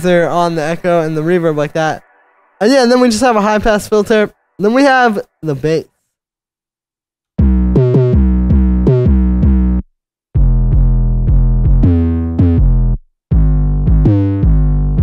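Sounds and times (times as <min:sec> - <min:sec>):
deep synth bass line: 0:07.4 - 0:15.0.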